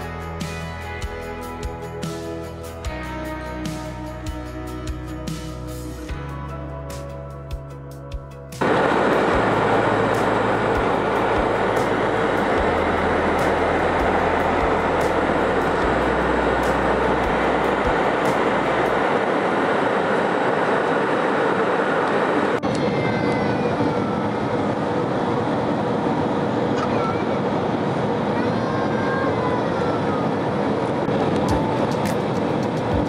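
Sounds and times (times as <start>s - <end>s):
faint gliding whines: 8.6s - 26.8s
jet engine cabin roar: 8.6s - 33.0s.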